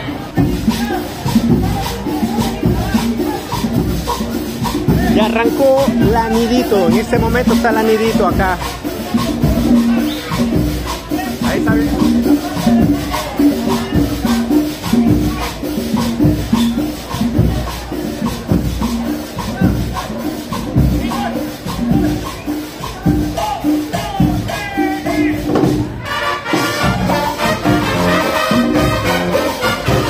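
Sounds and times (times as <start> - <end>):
drum and cymbal beat: 0.0 - 30.0
marching band playing: 0.0 - 30.0.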